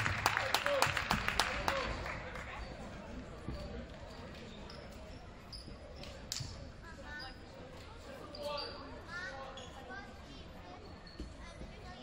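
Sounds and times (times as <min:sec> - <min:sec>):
background chatter of voices: 0:00.5 - 0:12.0.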